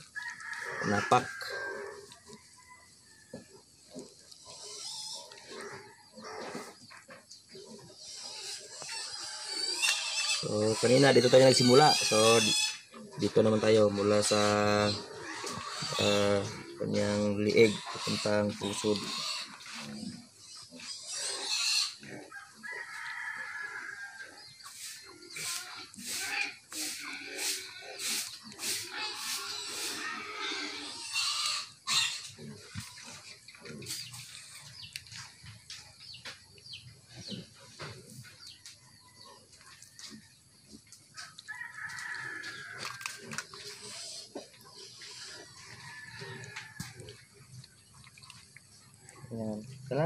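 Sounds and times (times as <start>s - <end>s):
rooster crowing: 0.1s - 3.4s, 22.3s - 24.2s, 41.4s - 43.2s, 45.5s - 47.1s.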